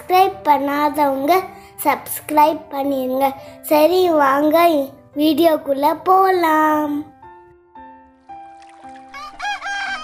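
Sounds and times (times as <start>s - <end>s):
slow background music: 0.0s - 10.0s
rooster crowing: 9.2s - 10.0s.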